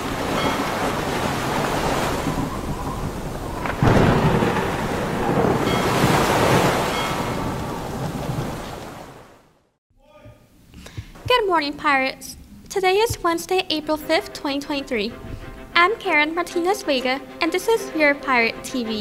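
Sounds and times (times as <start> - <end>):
loud thunderclap: 0.0 - 9.2
rumbling thunder: 0.0 - 9.2
steady rain: 0.0 - 9.4.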